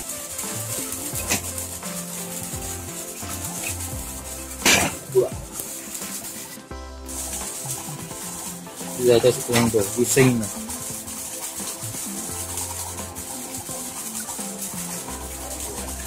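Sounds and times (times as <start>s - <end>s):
background music with bass line: 0.0s - 16.0s
brushing noises: 0.0s - 16.0s
water splashing into pond: 0.0s - 16.0s.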